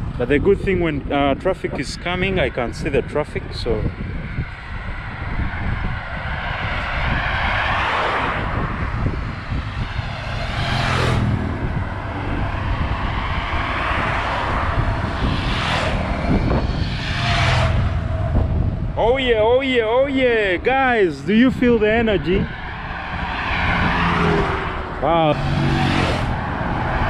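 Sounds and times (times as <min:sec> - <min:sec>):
vehicles passing at highway speed: 0:00.0 - 0:27.0.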